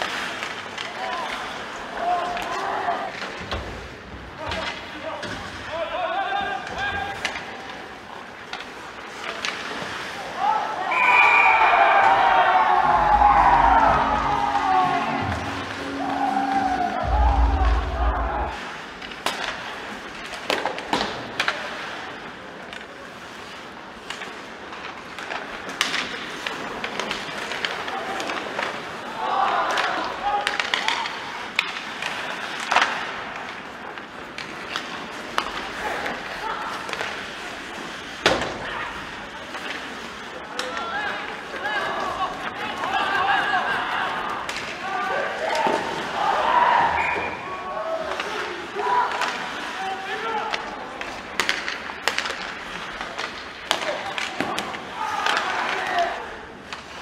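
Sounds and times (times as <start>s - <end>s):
players shouting in arena: 10.6s - 18.6s.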